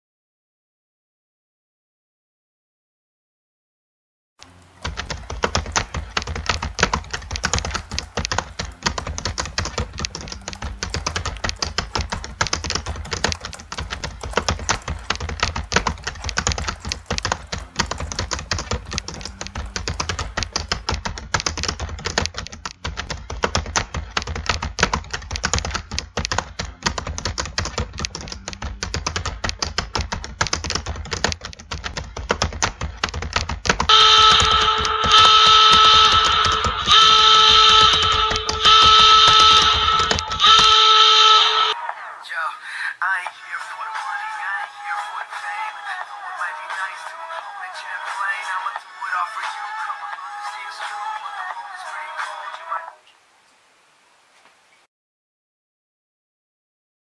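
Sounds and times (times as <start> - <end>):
typing on computer keyboard: 4.8 - 41.8.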